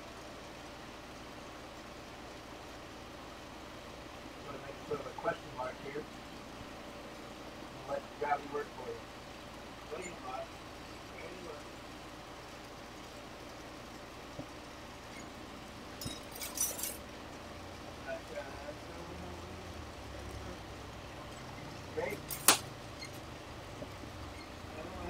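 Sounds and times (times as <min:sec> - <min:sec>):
glass rods clinking: 0:16.0 - 0:17.0, 0:22.1 - 0:23.2.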